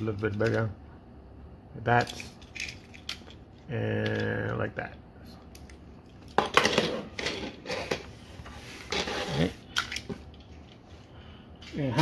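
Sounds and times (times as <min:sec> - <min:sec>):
plastic toy vehicles clattering: 0:01.9 - 0:03.4.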